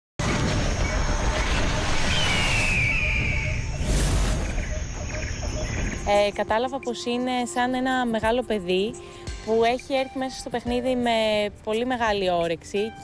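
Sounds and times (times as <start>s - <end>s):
loud whoosh: 0.2s - 5.3s
falling whistle-like tone: 0.6s - 6.0s.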